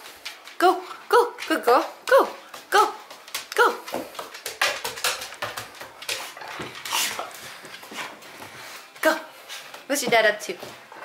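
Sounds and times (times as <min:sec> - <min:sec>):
footsteps on carpeted stairs: 0:02.4 - 0:10.9.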